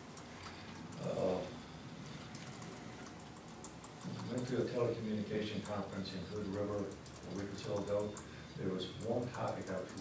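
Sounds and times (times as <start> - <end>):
laptop keyboard typing: 0.0 - 1.4, 2.1 - 10.0
low room hum: 0.0 - 10.0.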